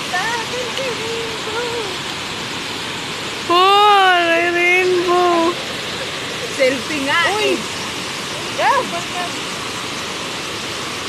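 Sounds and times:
waterfall rushing: 0.0 - 11.0.

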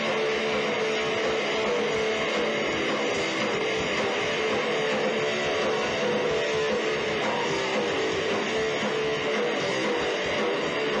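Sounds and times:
distorted electric guitars: 0.0 - 11.0
drums thumping beat: 0.0 - 11.0
punk rock band playing live: 0.0 - 11.0.

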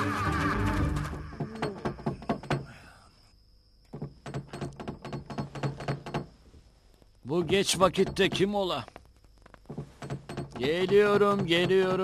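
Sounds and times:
rapid knocking on wooden door: 1.3 - 2.7, 3.9 - 6.4, 7.4 - 8.7, 9.7 - 12.0.

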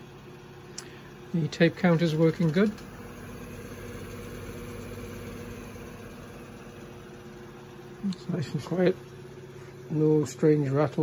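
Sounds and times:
tape deck rewinding hum: 1.3 - 9.3.

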